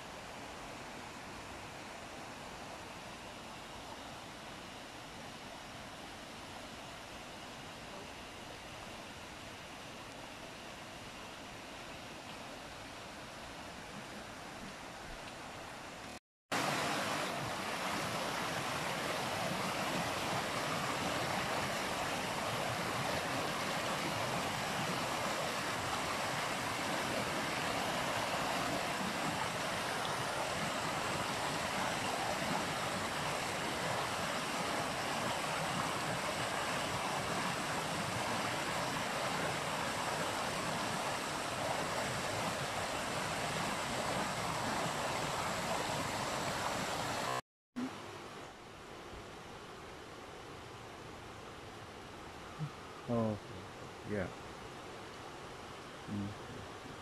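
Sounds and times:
stream rushing over stones: 0:12.3 - 0:48.2.

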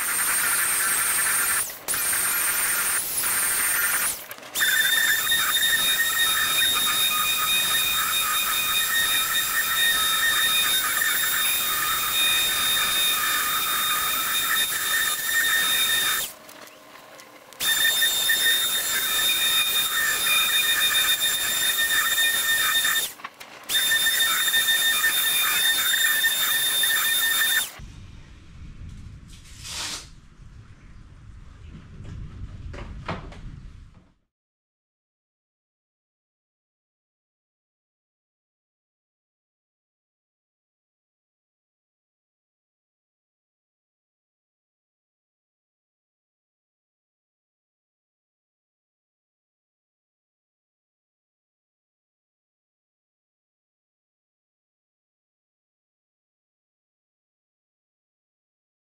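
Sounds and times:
orbital sander whining on wood: 0:00.0 - 0:16.4, 0:17.6 - 0:23.2, 0:23.8 - 0:27.8.

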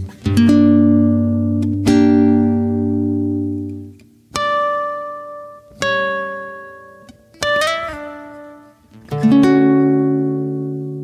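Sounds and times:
plucked guitar chord: 0:00.0 - 0:11.0.

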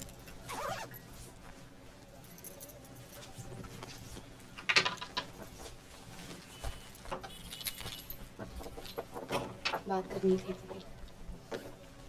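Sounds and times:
keys jangling: 0:02.2 - 0:03.2, 0:07.3 - 0:09.0.

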